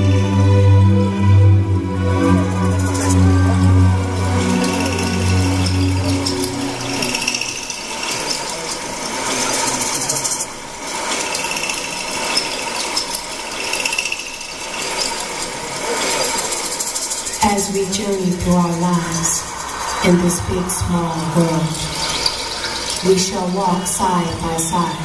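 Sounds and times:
low ambient music: 0.0s - 12.9s, 13.6s - 25.0s.

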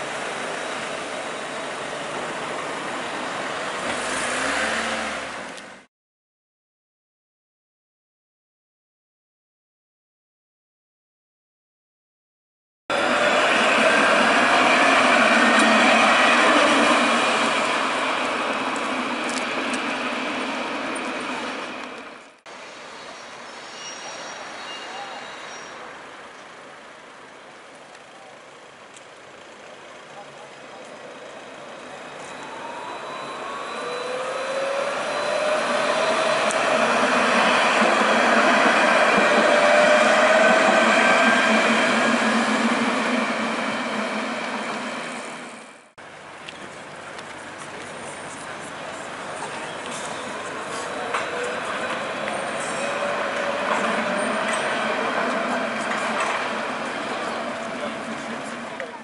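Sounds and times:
tram passing on street track: 0.0s - 5.9s, 12.9s - 59.0s
traction motor whine: 30.7s - 45.9s, 48.9s - 59.0s.

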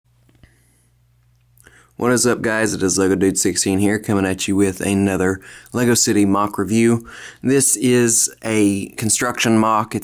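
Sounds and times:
steady low hum: 0.1s - 10.0s
short intake of breath: 5.4s - 5.7s, 7.0s - 7.4s.

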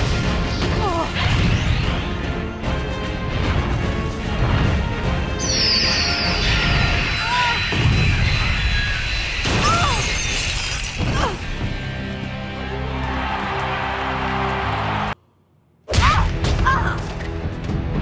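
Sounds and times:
dramatic orchestral score: 0.0s - 15.2s.

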